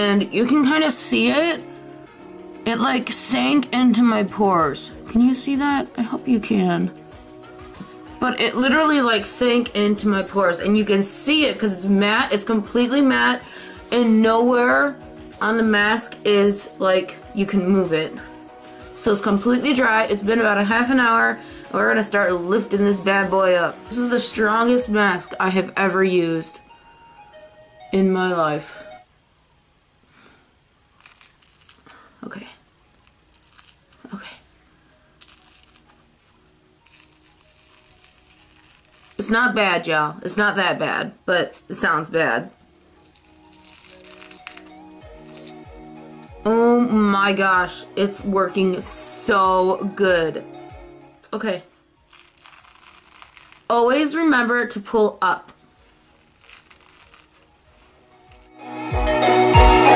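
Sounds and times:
background music: 0.0 - 59.9
face mask tearing off skin: 31.0 - 32.0, 33.0 - 34.1, 35.2 - 36.0, 36.8 - 39.2, 42.6 - 45.7, 52.0 - 53.7, 55.8 - 58.6
heavy beat: 58.8 - 59.9.

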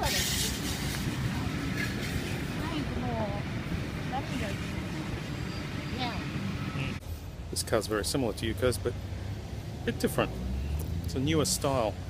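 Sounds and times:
low outdoor rumble: 0.0 - 9.3.

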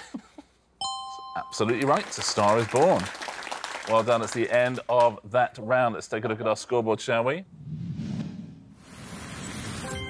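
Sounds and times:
noise whoosh: 7.4 - 9.9.

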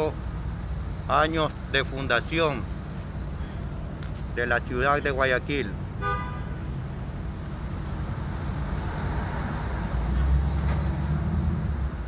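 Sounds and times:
rumble of passing vehicles: 0.0 - 12.0
car horn toot: 6.0 - 6.6.

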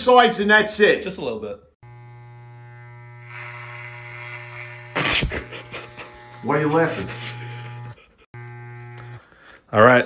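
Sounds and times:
clippers cutting hair: 1.8 - 9.6
electric hair clippers buzzing: 1.8 - 9.6.

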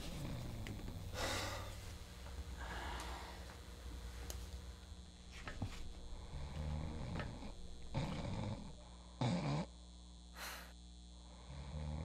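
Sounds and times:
person snoring: 0.0 - 1.8, 6.1 - 12.0.

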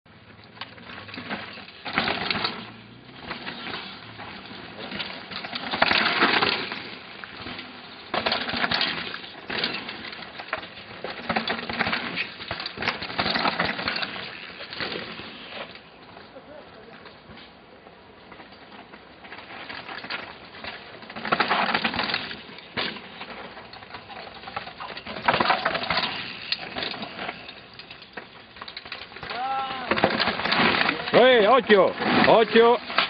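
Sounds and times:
bike tyres skidding on gravel: 0.6 - 16.9, 19.2 - 33.0.

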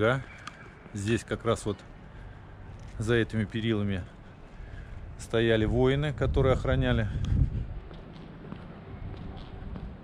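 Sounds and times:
faint footsteps walking: 0.0 - 10.0
steady low rumble: 0.0 - 10.0.

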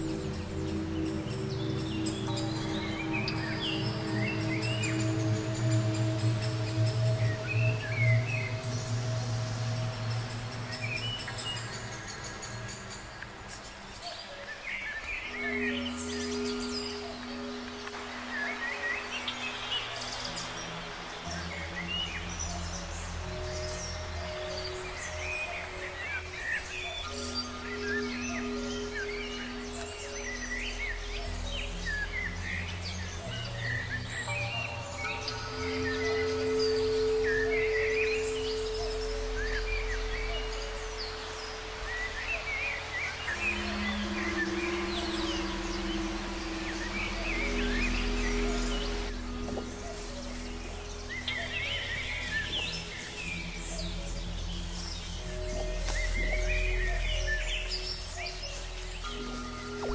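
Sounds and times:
birds chirping: 0.0 - 59.9
slow ambient music: 0.0 - 59.9.

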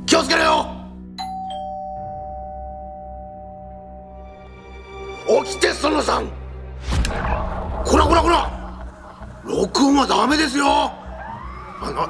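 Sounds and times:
two-note doorbell chime: 1.2 - 4.4.

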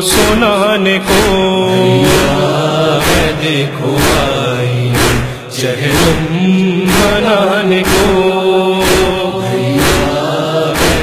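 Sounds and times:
wordless chorus chanting: 0.0 - 11.0
sharp percussive beat: 0.1 - 11.0.

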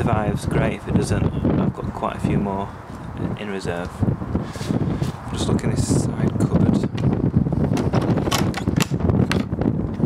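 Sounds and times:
wind rumble: 0.0 - 10.0
microphone handling noise: 2.9 - 10.0
sharp clicks and knocks: 7.7 - 10.0.

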